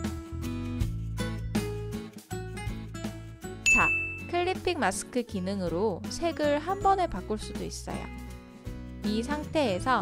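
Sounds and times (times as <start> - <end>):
light background music: 0.0 - 10.0
bright ding chime: 3.6 - 4.4.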